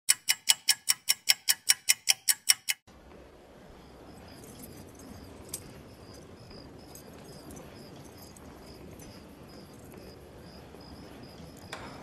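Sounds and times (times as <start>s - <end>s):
rapid mechanical clicking: 0.1s - 2.9s.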